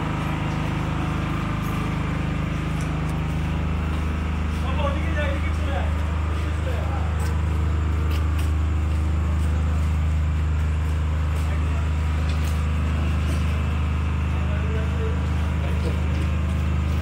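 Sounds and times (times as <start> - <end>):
diesel engine idling: 0.0 - 17.0.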